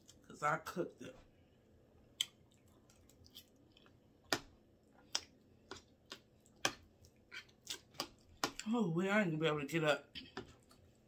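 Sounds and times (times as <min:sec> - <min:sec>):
mouth clicks and smacks: 0:02.1 - 0:06.8
chewing: 0:02.1 - 0:08.7, 0:10.2 - 0:11.0.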